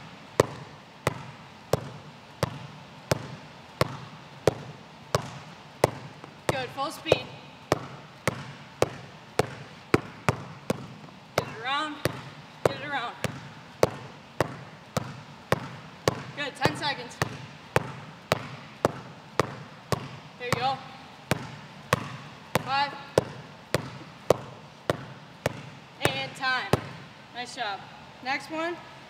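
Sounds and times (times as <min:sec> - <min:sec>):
basketball bouncing on court floor: 0:00.0 - 0:27.1.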